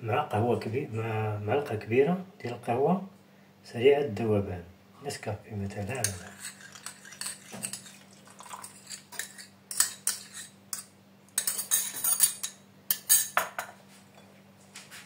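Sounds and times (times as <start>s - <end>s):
metal spoon scraping glass bowl: 5.6s - 13.3s.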